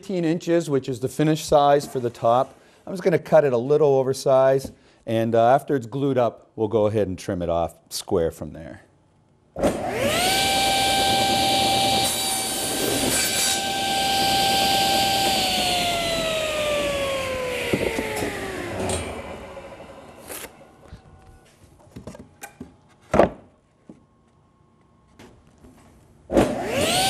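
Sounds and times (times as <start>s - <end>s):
saw blade cutting wood: 9.7s - 20.6s
table saw motor whine: 9.7s - 21.3s, 26.6s - 27.0s.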